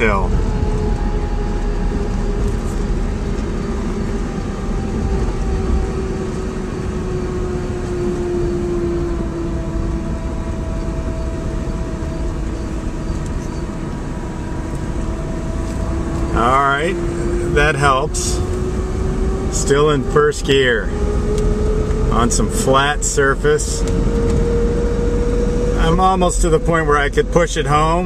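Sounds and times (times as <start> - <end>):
low road rumble: 0.0 - 28.0.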